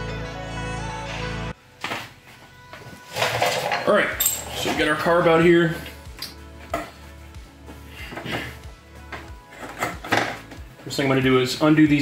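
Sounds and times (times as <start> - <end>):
quiet background music: 0.0 - 12.0
metal parts knocking and clinking: 3.2 - 4.9.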